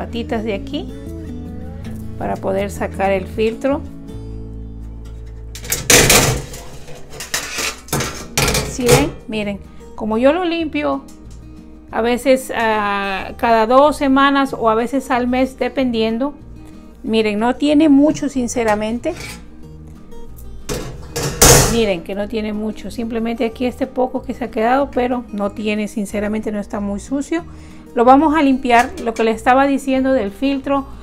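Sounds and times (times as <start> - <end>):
soft background music: 0.0 - 31.0
metal grease filter rattling: 5.3 - 9.0, 20.7 - 21.9.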